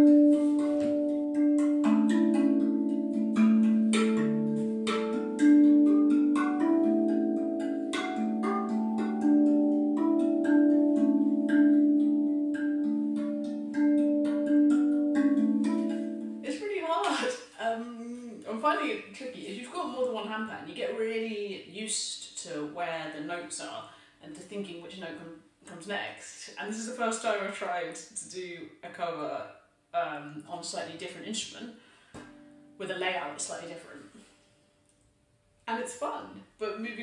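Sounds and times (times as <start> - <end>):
steel drum melody: 0.0 - 16.8
person speaking: 16.4 - 31.7, 32.8 - 34.2, 35.7 - 37.0.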